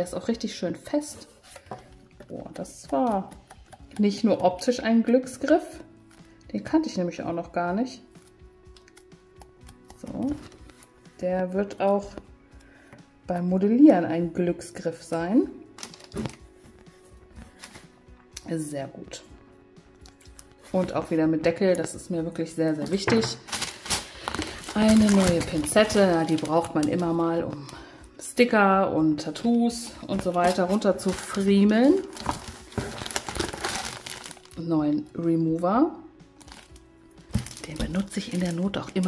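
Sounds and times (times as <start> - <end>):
quiet background music: 0.0 - 39.0
plastic bag crinkling: 23.3 - 27.7, 30.1 - 34.6, 36.4 - 39.0.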